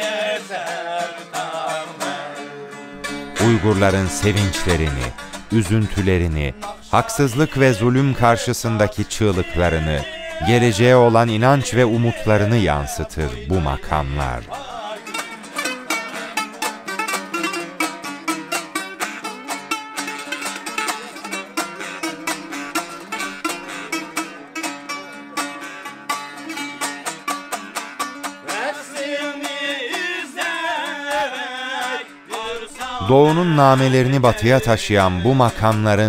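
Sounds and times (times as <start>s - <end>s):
plucked long-necked lute: 0.0s - 36.0s.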